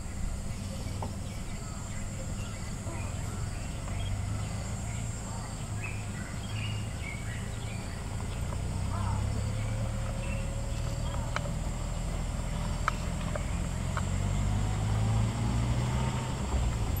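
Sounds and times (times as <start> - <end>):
vehicle engine rumbling: 0.0 - 17.0.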